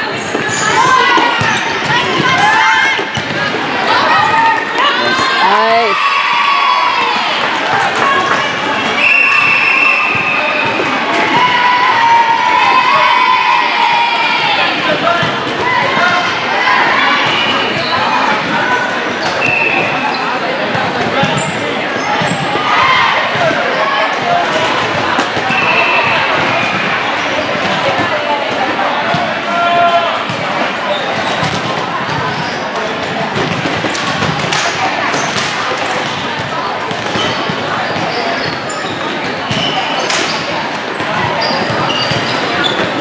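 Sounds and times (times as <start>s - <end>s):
people shouting in echoing hall: 0.0s - 31.3s
ball hit and bouncing: 31.4s - 32.3s, 33.0s - 38.6s.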